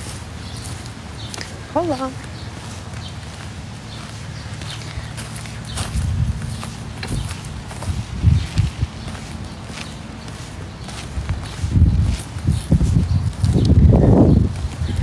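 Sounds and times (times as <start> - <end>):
footsteps: 0.0 - 15.0.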